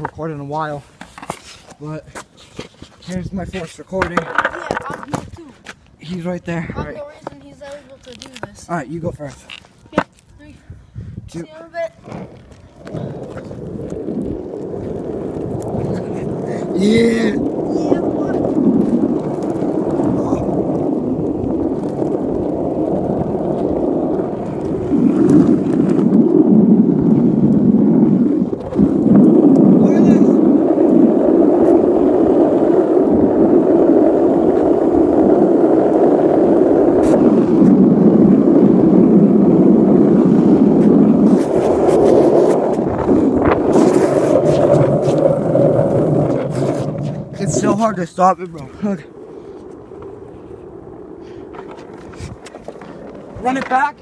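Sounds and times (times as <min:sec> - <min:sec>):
skateboard wheels rumbling on asphalt: 0:00.0 - 0:54.0
wind on microphone: 0:00.0 - 0:54.0.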